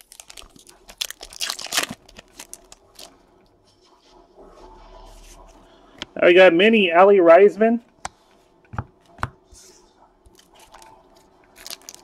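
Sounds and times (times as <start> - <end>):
wrapper tearing and crinkling: 0.0 - 3.2, 11.5 - 12.0.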